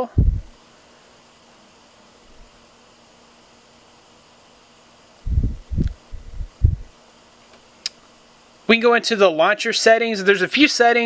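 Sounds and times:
faint hiss with low hum: 0:00.0 - 0:11.0.

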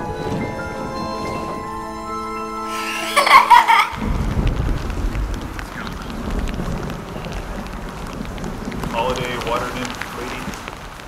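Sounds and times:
rain falling on water and paving: 0:00.0 - 0:11.0
wind rumble on microphone: 0:03.9 - 0:11.0.

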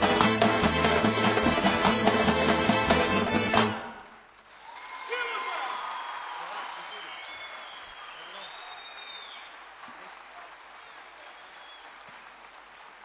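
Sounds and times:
audience applauding: 0:00.0 - 0:13.0.

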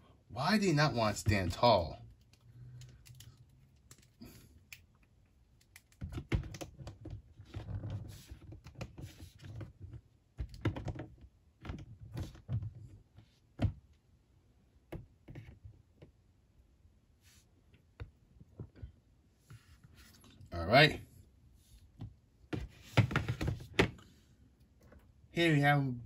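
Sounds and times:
plastic figures rubbing and rustling: 0:05.6 - 0:10.1.

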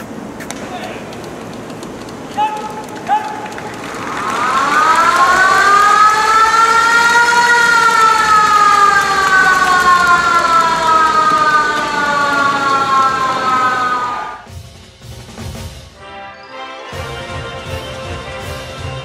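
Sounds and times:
loud siren wail: 0:03.9 - 0:14.5.

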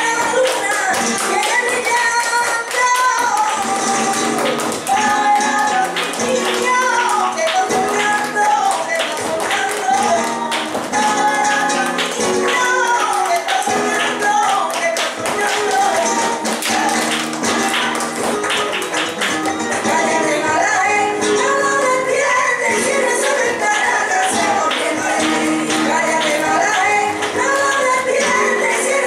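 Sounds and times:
person singing with sliding notes: 0:00.0 - 0:18.0, 0:19.6 - 0:29.0
flamenco music: 0:00.0 - 0:29.0
sharp rhythmic claps or heel taps: 0:00.0 - 0:29.0.

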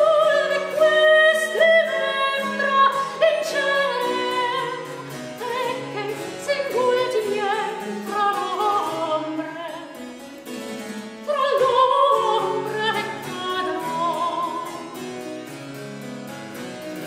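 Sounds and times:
soprano singing with vibrato: 0:00.0 - 0:10.0, 0:11.2 - 0:15.0.

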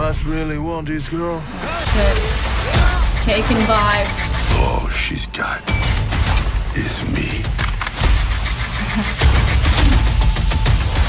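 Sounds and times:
dramatic trailer music: 0:00.0 - 0:11.0.

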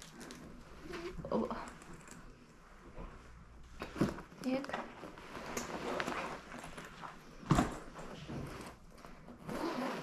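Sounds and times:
puffer jacket rustling: 0:05.0 - 0:10.0.

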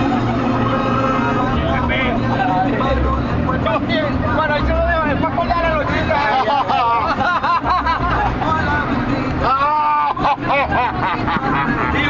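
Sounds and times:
bus engine drone: 0:00.0 - 0:12.0
men talking: 0:00.0 - 0:12.0.

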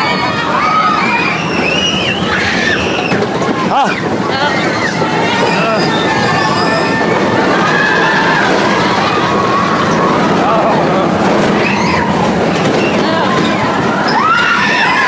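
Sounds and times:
riders shouting: 0:00.0 - 0:15.0
roller coaster rumbling on track: 0:00.0 - 0:15.0.

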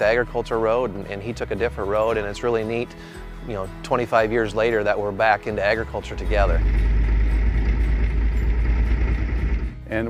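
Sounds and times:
tractor engine rumbling: 0:04.4 - 0:10.0.

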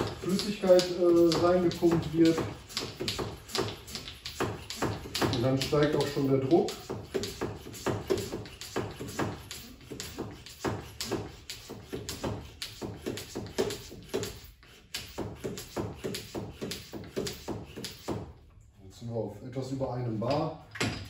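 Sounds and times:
hand pump clicking: 0:00.0 - 0:18.1.

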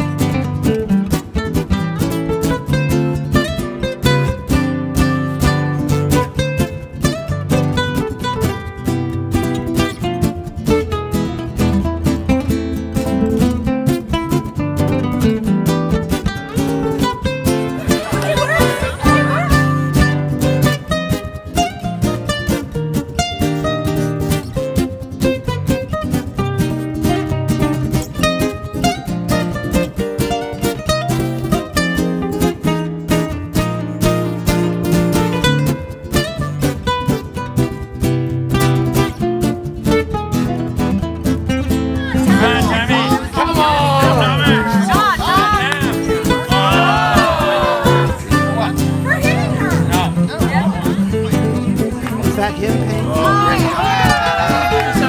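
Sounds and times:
plucked acoustic guitar: 0:00.0 - 0:55.0.

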